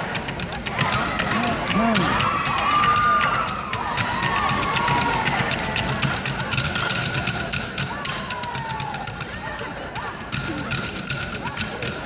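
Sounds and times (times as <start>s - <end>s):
crowd chatter: 0.0s - 12.0s
drumsticks beating on wooden stools: 0.2s - 9.4s.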